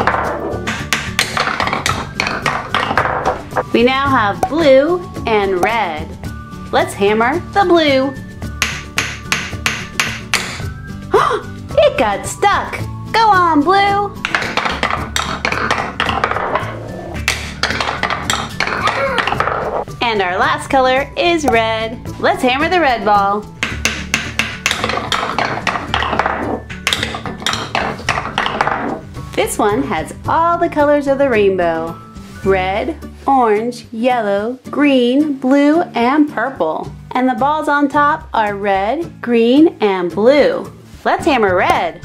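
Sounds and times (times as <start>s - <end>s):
wooden mallet knocking ball: 0.0s - 4.8s, 5.5s - 6.0s, 8.5s - 10.6s, 14.2s - 19.9s, 21.4s - 21.7s, 23.6s - 29.0s.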